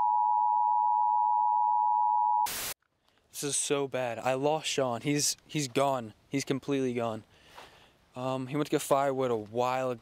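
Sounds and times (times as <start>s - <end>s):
steady test tone beep: 0.0s - 2.5s.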